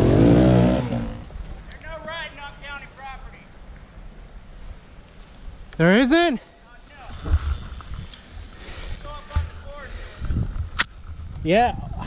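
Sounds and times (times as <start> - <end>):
wind thumps on microphone: 7.1 - 8.2, 10.2 - 12.0.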